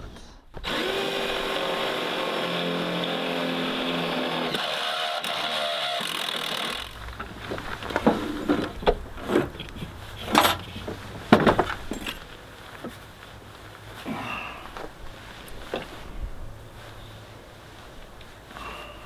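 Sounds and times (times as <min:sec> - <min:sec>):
cordless drill boring: 0:00.6 - 0:07.0.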